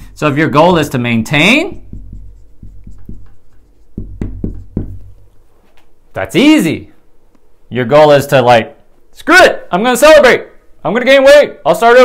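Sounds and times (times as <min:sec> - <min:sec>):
low steady hum: 0:00.0 - 0:11.0
marker writing on whiteboard: 0:00.8 - 0:05.3.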